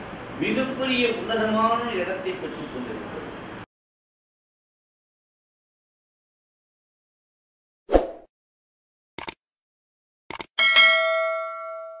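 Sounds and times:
quick clicks: 9.2 - 9.4, 10.3 - 10.5
bell-like ding: 10.6 - 12.0.

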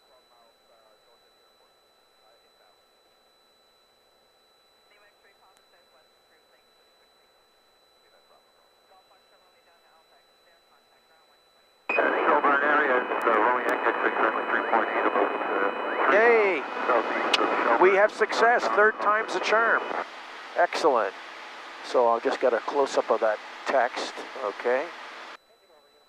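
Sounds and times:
thin steady tone: 0.0 - 26.0
faint radio chatter: 4.9 - 21.1, 21.7 - 26.0
loud radio voice transmission: 11.9 - 21.1, 21.8 - 25.0.

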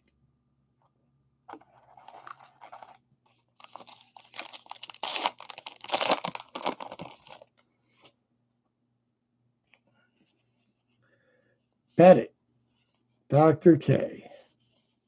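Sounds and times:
foil wrapper tearing and crinkling: 3.6 - 7.5.

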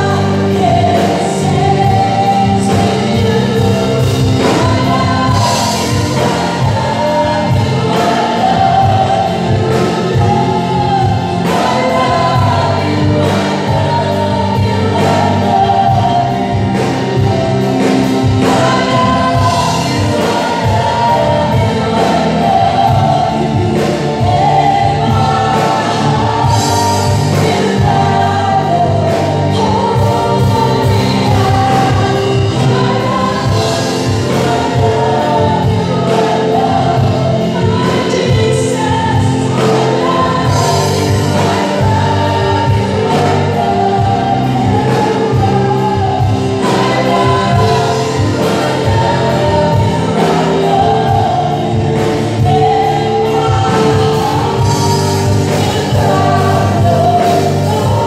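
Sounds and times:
band accompaniment: 0.0 - 58.0
men and women singing together: 0.0 - 58.0.

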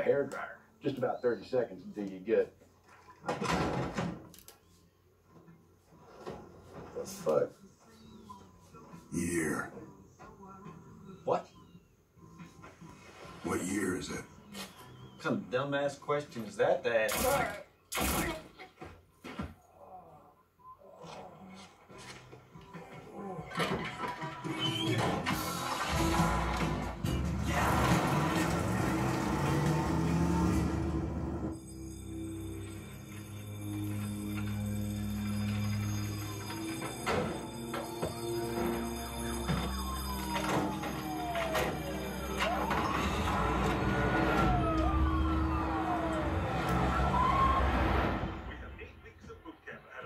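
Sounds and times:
film music score: 22.1 - 49.0
siren wailing: 24.5 - 48.7
car engine rumble: 25.6 - 31.6.

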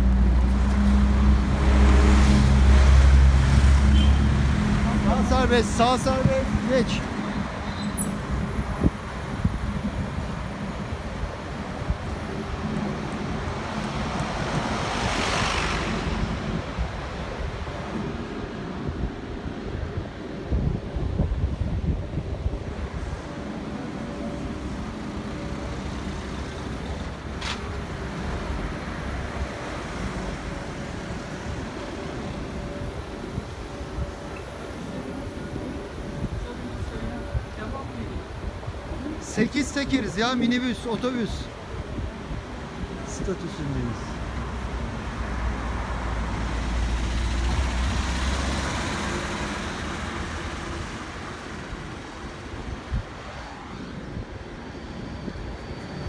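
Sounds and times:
street traffic: 0.0 - 56.0.

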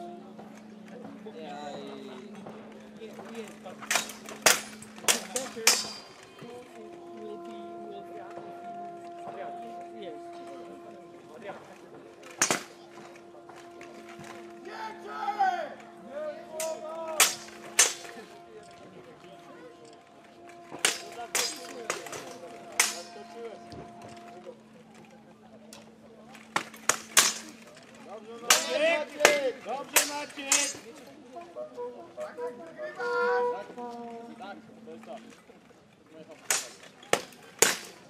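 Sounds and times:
swords clashing on armour: 3.8 - 6.3, 12.2 - 14.5, 16.6 - 18.4, 20.4 - 24.0, 26.3 - 31.0, 36.4 - 38.0.

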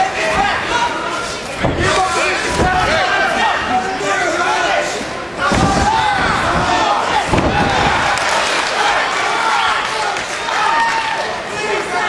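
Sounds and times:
spectators shouting: 0.0 - 12.0
body slammed heavy thud: 5.5 - 8.1.

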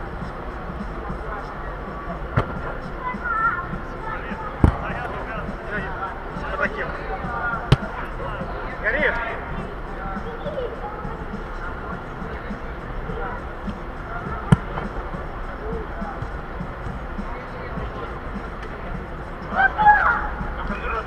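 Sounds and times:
steady low hum: 0.0 - 21.0
sharp ball strike: 2.3 - 2.8, 4.6 - 5.0, 7.6 - 8.1, 14.5 - 15.0
distant shouts echoing: 19.4 - 20.6.

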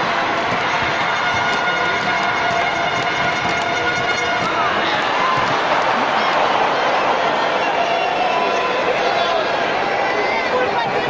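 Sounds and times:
crowd shouting and talking: 0.0 - 11.0
shouts or whistles: 4.1 - 9.4.

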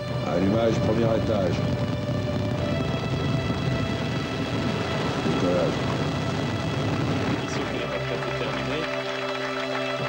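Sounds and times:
music: 0.0 - 10.0
rocket engines rumbling: 0.0 - 10.0.

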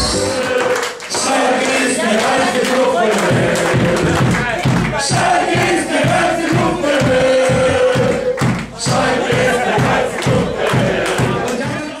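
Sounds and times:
crowd chanting: 0.0 - 12.0
rhythmic clapping: 0.0 - 12.0.

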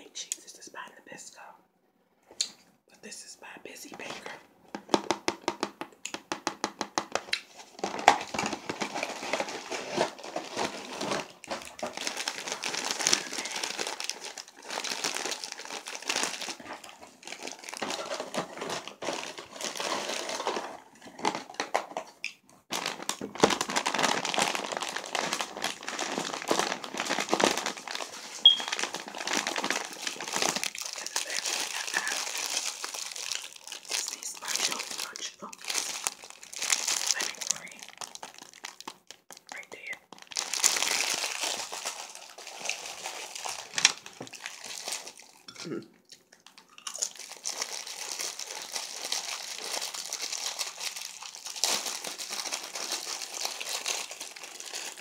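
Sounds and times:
plastic wrappers crackling: 7.5 - 45.6, 46.2 - 55.0.

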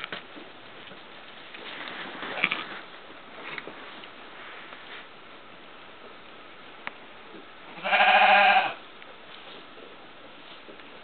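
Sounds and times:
sheep bleating: 7.8 - 8.8.

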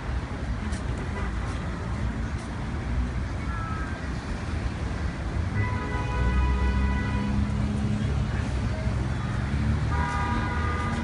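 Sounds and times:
city street traffic rumble: 0.0 - 11.0
crowd noise outdoors: 0.0 - 11.0.

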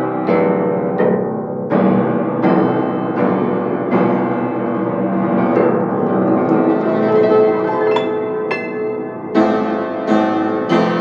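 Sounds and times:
piano low chords: 4.6 - 11.0.

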